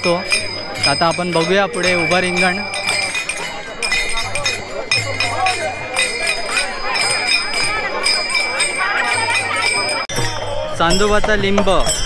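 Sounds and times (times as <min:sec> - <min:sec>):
crowd voices: 0:00.0 - 0:12.0
hand cymbals clinking: 0:00.0 - 0:12.0.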